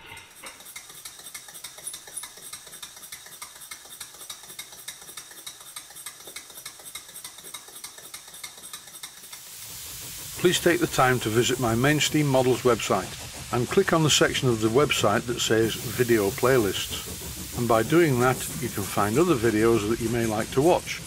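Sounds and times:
steam engine exhaust puffs: 0.2s - 21.0s
rising hiss: 9.4s - 21.0s.

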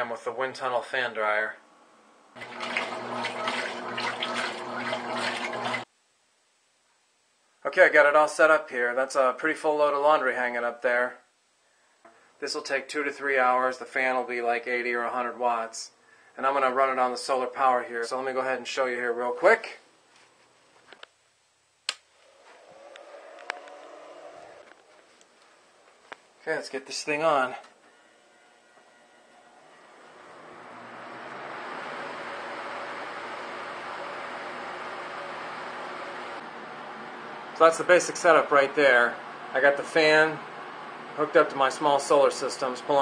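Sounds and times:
washing machine churning water: 2.4s - 5.9s
washing machine hum: 2.4s - 5.9s, 30.0s - 43.0s.

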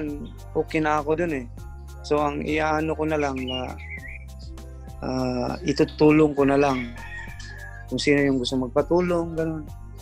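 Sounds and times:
rooster crowing: 6.4s - 7.9s.

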